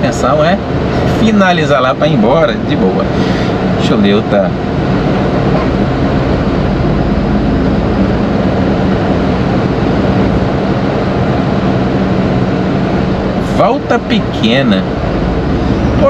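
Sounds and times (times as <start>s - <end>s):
diesel engine drone: 0.0s - 16.0s
road and tyre noise: 0.0s - 16.0s.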